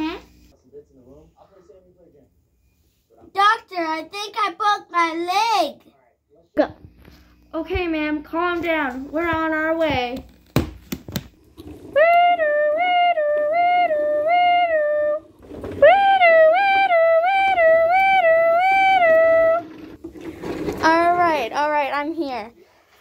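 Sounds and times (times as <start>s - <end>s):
child imitating siren: 12.0s - 19.7s.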